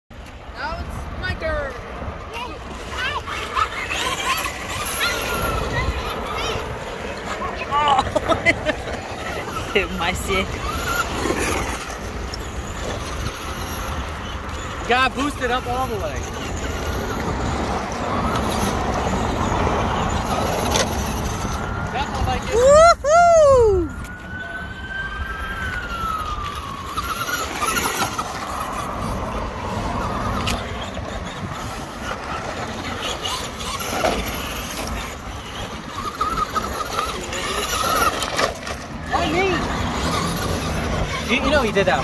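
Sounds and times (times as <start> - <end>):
electric motor whining: 3.0 - 22.6, 23.4 - 42.0.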